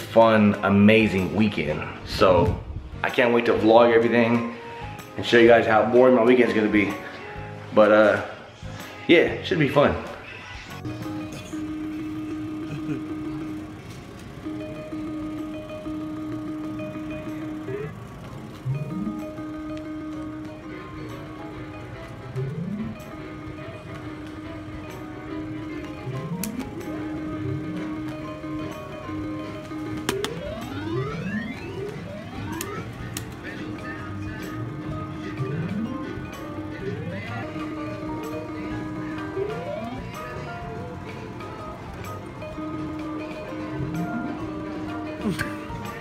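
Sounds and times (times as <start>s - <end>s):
electronic slot machine music: 0.0s - 8.3s, 10.6s - 46.0s
people chatting: 5.2s - 7.0s
rising pitch sweeps: 10.8s - 33.2s
sharp clicks: 29.6s - 33.5s.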